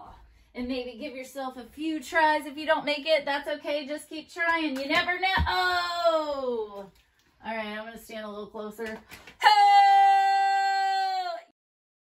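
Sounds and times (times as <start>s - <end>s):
woman cheering shout: 9.4s - 11.5s.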